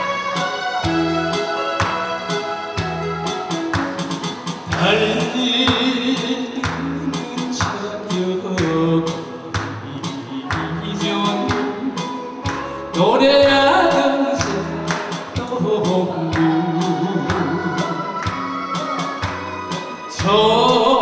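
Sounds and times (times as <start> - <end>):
electric bass: 0.0 - 21.0
steady drum beat: 0.0 - 21.0
man singing into a microphone: 4.7 - 19.0, 19.7 - 21.0.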